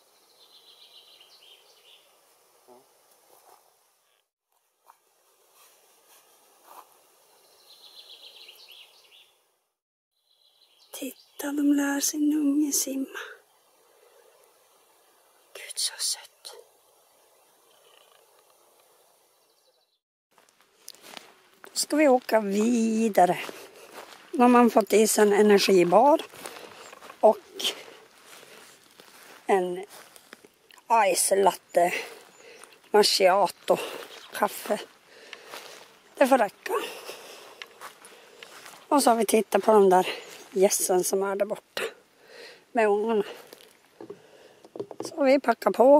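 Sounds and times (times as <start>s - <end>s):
faint background hiss: 10.3s - 19.8s
person whispering: 15.5s - 16.7s, 27.2s - 28.0s.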